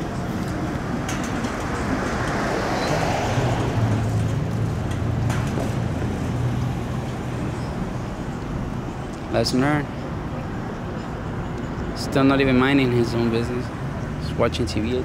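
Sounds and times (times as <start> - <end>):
vehicle passing: 0.0 - 10.0.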